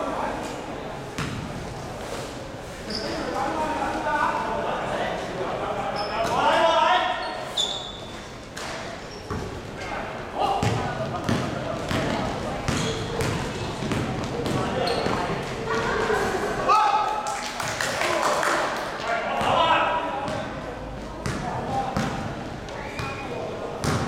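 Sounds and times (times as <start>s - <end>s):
sneaker squeaks: 2.8s - 3.4s, 5.9s - 9.6s, 11.9s - 16.2s, 22.8s - 24.0s
basketball dribbling: 10.6s - 15.2s.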